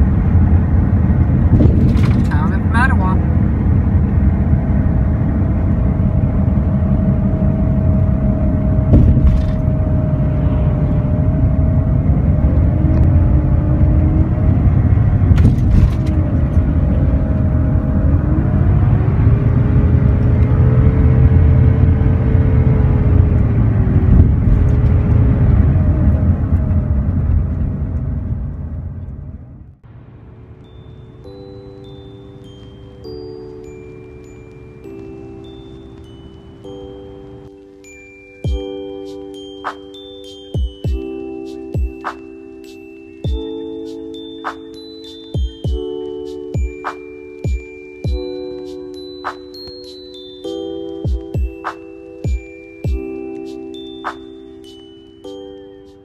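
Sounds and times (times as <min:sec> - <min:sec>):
faint rising and falling tones: 0:00.0 - 0:55.8
van road rumble: 0:00.0 - 0:56.0
soft chime-like music: 0:30.3 - 0:56.0.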